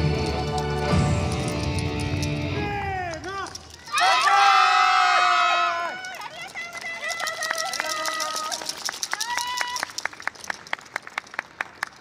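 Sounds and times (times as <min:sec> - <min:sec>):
group shouting together: 0:03.9 - 0:06.1.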